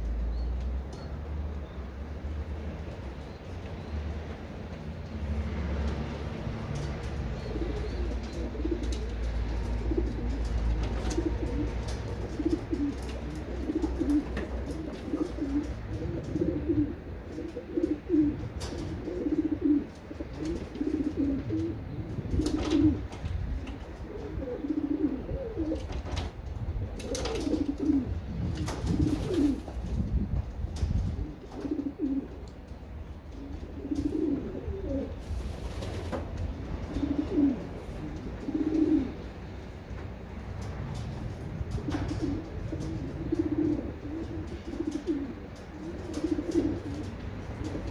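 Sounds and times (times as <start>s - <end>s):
pigeons cooing: 6.5s - 30.0s, 30.8s - 39.8s, 40.4s - 47.9s.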